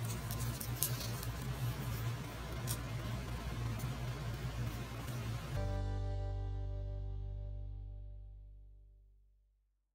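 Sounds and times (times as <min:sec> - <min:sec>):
pastry crackling: 0:00.0 - 0:05.5
steady low hum: 0:00.0 - 0:09.6.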